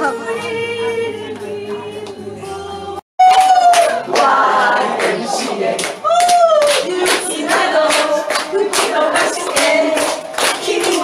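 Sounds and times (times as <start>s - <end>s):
woman singing into microphone: 0.0s - 4.4s
hand clapping: 5.0s - 11.0s.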